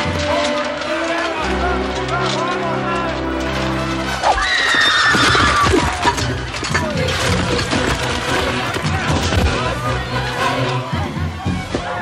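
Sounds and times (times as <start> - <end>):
battle clatter: 0.0 - 12.0
horse whinnying: 4.2 - 6.1.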